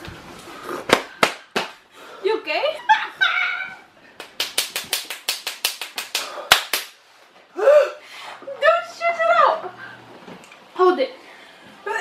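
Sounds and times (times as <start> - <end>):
hand slaps: 0.9 - 1.8, 4.2 - 7.0.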